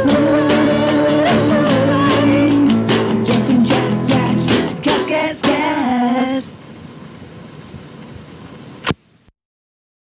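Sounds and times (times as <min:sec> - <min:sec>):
recording hiss: 0:00.0 - 0:09.3.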